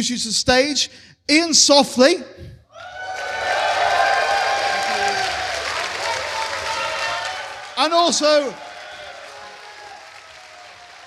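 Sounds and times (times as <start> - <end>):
audience applauding: 3.1 - 11.0.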